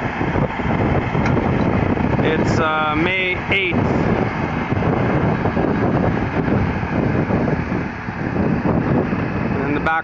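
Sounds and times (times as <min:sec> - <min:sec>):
tractor engine running: 0:00.0 - 0:10.0
wind buffeting microphone: 0:00.0 - 0:10.0.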